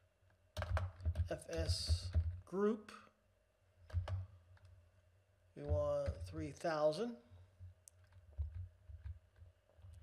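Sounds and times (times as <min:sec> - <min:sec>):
computer keys clicking: 0:03.9 - 0:04.7.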